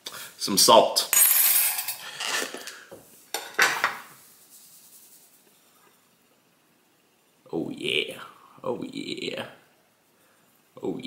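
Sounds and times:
crockery clattering: 0:03.4 - 0:04.1.

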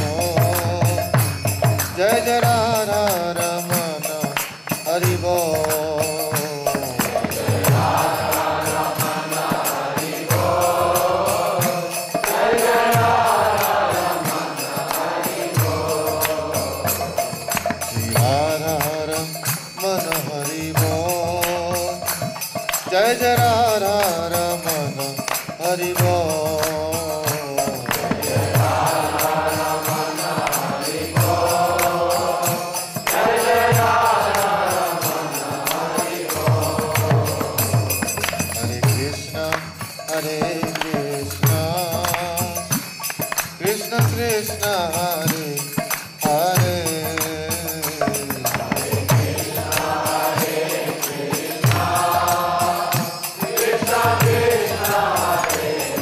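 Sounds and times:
man chanting into a microphone: 0:00.0 - 0:01.3, 0:01.9 - 0:09.4
man singing a chant: 0:00.0 - 0:56.0
percussion beat: 0:00.0 - 0:56.0
small hand cymbals: 0:00.0 - 0:56.0.

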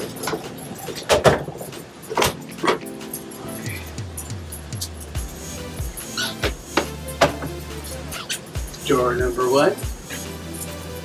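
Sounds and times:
metal hinges rattling: 0:00.0 - 0:10.8.

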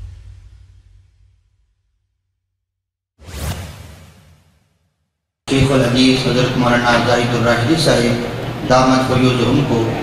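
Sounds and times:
swoosh sound effect: 0:03.2 - 0:04.9.

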